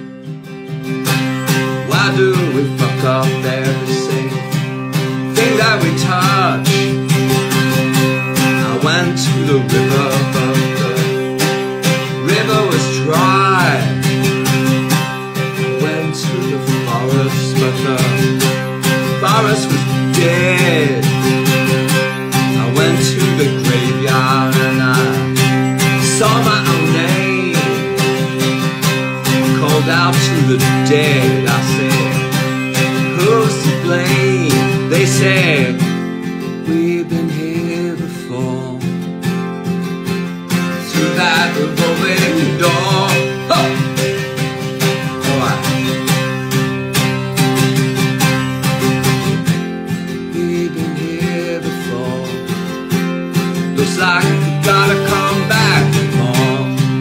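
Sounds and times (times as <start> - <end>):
acoustic guitar strummed: 0.0 - 57.0
man singing: 1.2 - 39.5, 40.5 - 57.0.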